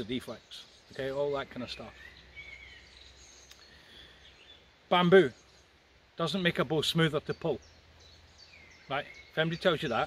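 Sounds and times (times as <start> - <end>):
man speaking: 0.0 - 2.0, 6.2 - 7.6, 8.9 - 10.0
distant birdsong: 0.0 - 10.0.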